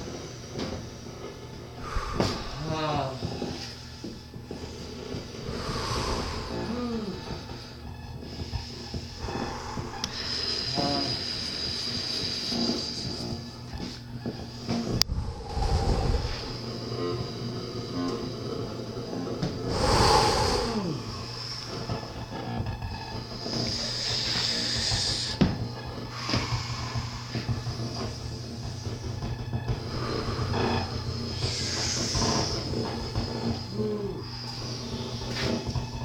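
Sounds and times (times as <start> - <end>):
close-up human breathing: 0.0 - 18.4, 19.3 - 36.0
low electronic throbbing drone: 0.0 - 36.0
dense low rumble: 1.8 - 3.2, 5.4 - 8.1, 9.0 - 10.3, 14.9 - 16.8
faint high whine: 1.8 - 3.8, 5.3 - 11.6.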